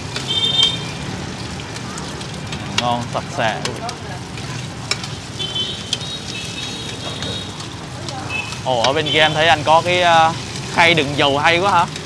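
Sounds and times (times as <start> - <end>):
food sizzling in hot oil: 0.0 - 12.0.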